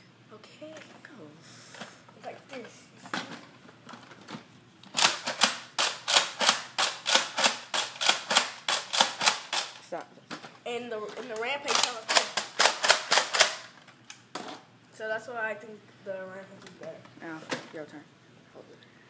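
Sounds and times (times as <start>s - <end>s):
toy blaster pumping clacks: 5.0s - 9.8s, 11.7s - 13.7s.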